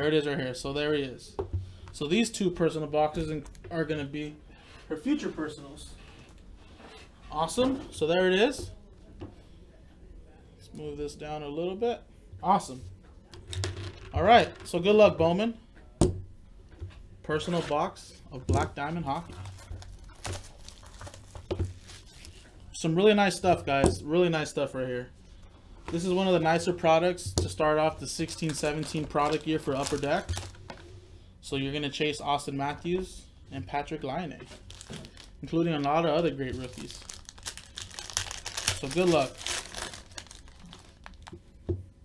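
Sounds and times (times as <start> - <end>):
plastic shrink-wrap crinkling: 19.1 - 22.5, 28.1 - 30.8, 34.5 - 41.5.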